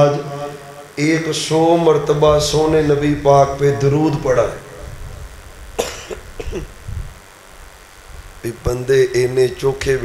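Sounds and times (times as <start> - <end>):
man coughing: 5.8 - 6.8.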